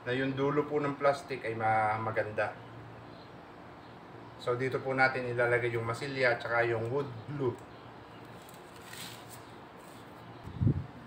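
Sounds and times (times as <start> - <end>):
plastic bag crinkling: 8.3 - 10.0.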